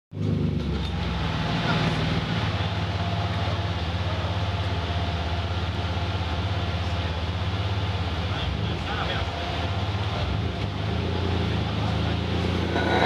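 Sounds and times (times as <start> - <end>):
car engine running on dyno: 0.2 - 13.0.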